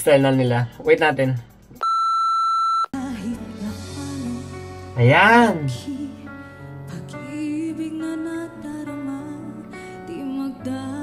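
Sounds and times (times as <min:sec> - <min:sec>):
music: 0:00.0 - 0:01.8, 0:03.0 - 0:11.0
electronic beep: 0:01.8 - 0:02.9.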